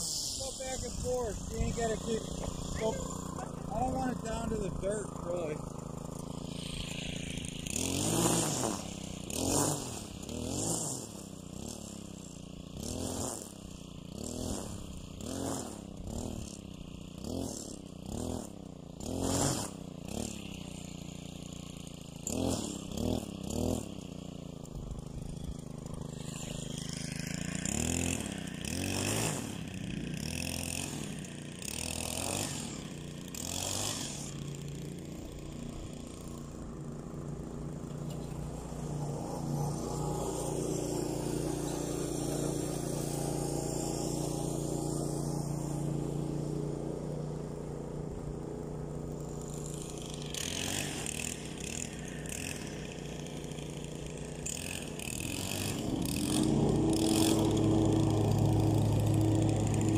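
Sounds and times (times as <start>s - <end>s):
string trimmer engine revving: 0.0s - 59.9s.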